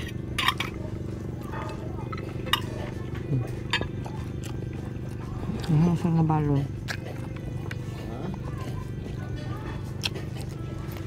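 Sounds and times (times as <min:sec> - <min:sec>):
faint voices: 0:00.0 - 0:11.0
steady low hum: 0:00.0 - 0:11.0.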